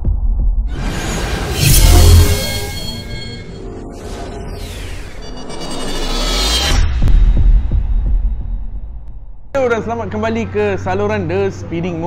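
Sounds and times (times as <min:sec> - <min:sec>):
sharp hit: 0:00.7 - 0:08.8.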